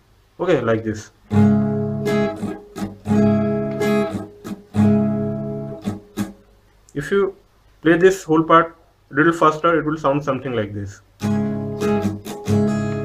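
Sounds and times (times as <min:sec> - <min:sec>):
acoustic guitar strumming: 0:01.2 - 0:06.6, 0:11.2 - 0:13.0.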